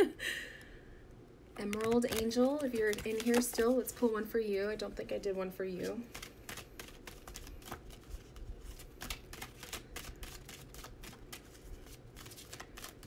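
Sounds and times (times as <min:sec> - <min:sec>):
cards being shuffled: 0:01.6 - 0:04.0, 0:05.8 - 0:13.0.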